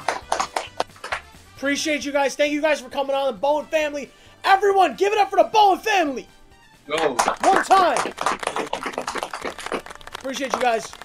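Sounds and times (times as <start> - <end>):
hands clapping in applause: 0.0 - 1.4, 6.9 - 11.0.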